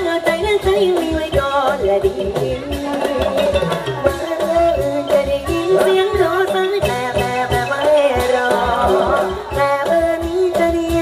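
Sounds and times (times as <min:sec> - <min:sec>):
band backing: 0:00.0 - 0:11.0
steady drum beat: 0:00.0 - 0:11.0.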